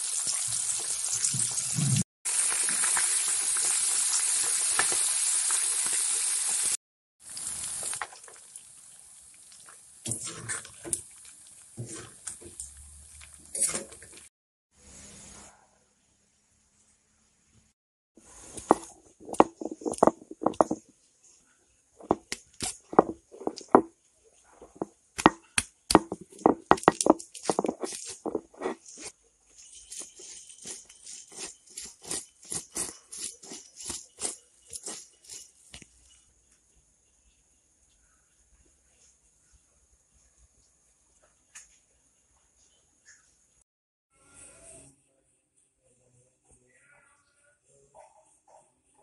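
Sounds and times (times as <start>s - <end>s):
oil sizzling in a wok: 0.0s - 15.5s, 18.2s - 20.4s
metal spoon stirring through oil: 9.6s - 14.3s, 18.3s - 20.9s, 22.0s - 23.9s, 26.0s - 36.2s
stone crunching on stone: 18.6s - 20.9s, 22.0s - 23.9s, 24.6s - 29.1s.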